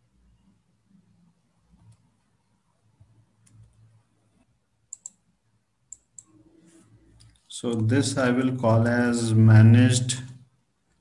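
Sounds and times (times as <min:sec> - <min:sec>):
computer mouse clicks: 0:01.7 - 0:02.3, 0:03.0 - 0:05.3, 0:05.9 - 0:06.4.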